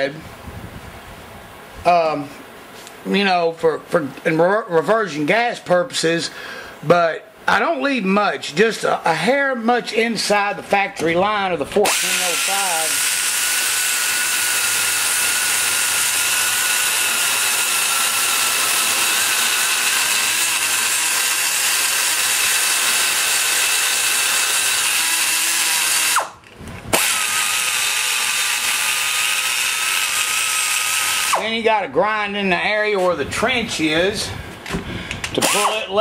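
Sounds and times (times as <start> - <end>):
die grinder whining: 11.8 - 31.5, 35.3 - 36.0.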